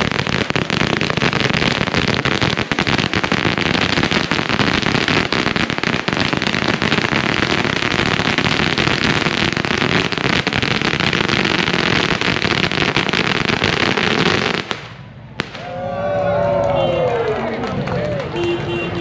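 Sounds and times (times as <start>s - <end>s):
firecrackers popping rapidly: 0.0s - 15.8s.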